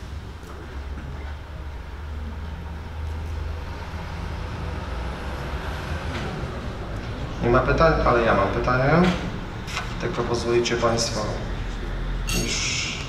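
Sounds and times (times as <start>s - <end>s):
low rumble of background noise: 0.0s - 13.0s.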